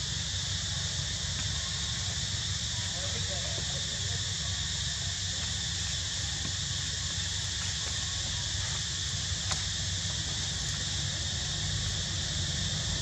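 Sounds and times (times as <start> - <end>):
high-pitched hiss: 0.0 - 13.0.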